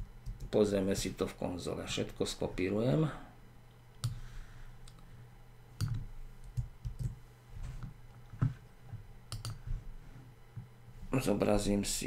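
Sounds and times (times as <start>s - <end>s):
computer keys and mouse clicking: 0.0s - 0.6s, 4.8s - 5.0s, 5.8s - 7.2s, 9.3s - 9.6s.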